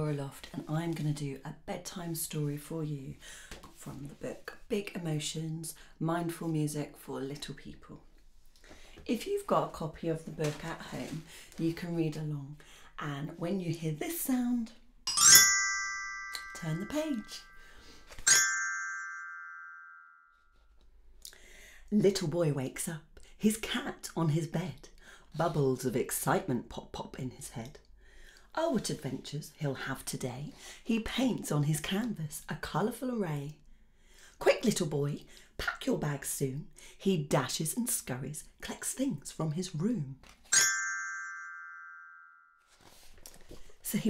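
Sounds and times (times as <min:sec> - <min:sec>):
glockenspiel note ringing: 0:15.1 - 0:20.4, 0:40.6 - 0:42.6.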